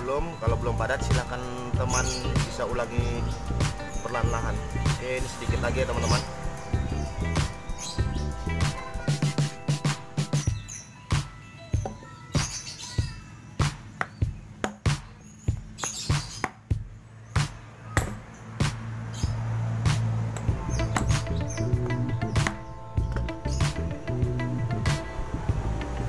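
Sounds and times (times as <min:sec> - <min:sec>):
background music: 0:00.0 - 0:26.0
birds chirping: 0:00.0 - 0:26.0
piston struck against wooden block: 0:18.0 - 0:18.3.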